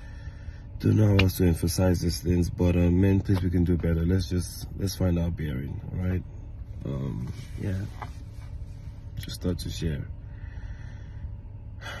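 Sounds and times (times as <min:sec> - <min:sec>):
car cabin rumble: 0:00.0 - 0:12.0
man's sharp breath: 0:10.2 - 0:12.0.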